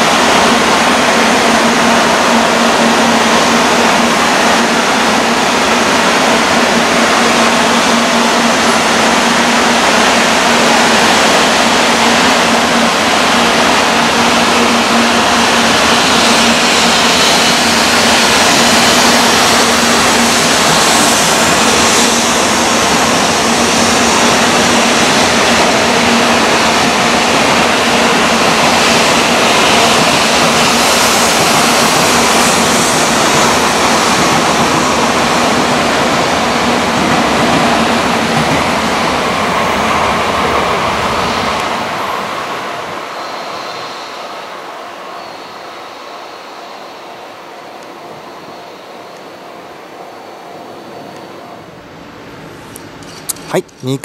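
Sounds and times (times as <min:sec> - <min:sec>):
low train hum: 0:00.0 - 0:54.0
train rushing past: 0:00.0 - 0:54.0.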